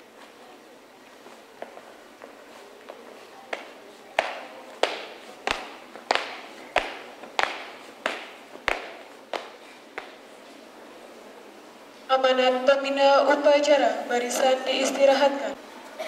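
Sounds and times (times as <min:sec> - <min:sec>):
marching footsteps on pavement: 0:01.2 - 0:10.2.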